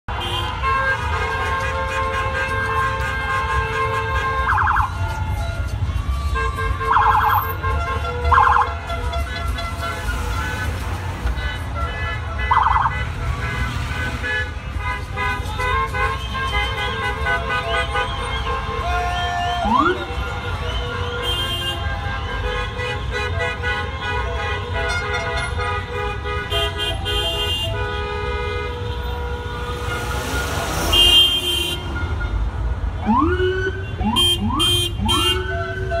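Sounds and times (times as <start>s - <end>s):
car horns honking: 0.1s - 36.0s
low rumble of engines: 0.1s - 36.0s
warbling police siren blasts: 4.4s - 5.0s, 8.3s - 8.7s, 12.5s - 13.0s, 19.6s - 20.2s
police siren whooping: 4.4s - 5.6s, 6.8s - 7.4s, 8.3s - 8.8s, 12.5s - 13.0s, 18.0s - 21.0s, 33.0s - 36.0s.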